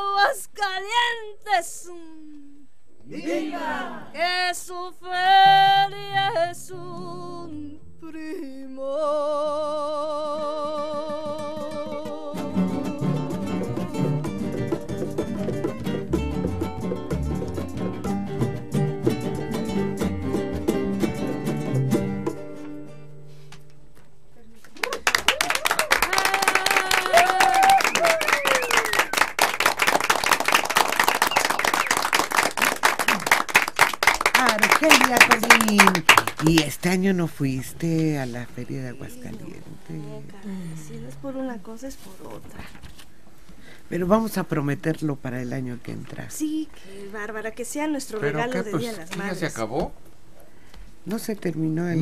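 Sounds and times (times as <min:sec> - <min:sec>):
woman singing with vibrato: 0:00.0 - 0:14.3, 0:26.0 - 0:28.0
acoustic guitars strumming: 0:10.4 - 0:24.0, 0:34.3 - 0:38.2
group applauding: 0:24.6 - 0:37.0.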